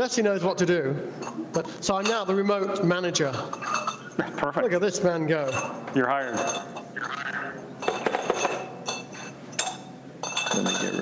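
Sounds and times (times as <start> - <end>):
bottles clinking: 3.4 - 4.3, 5.4 - 7.0, 7.8 - 11.0.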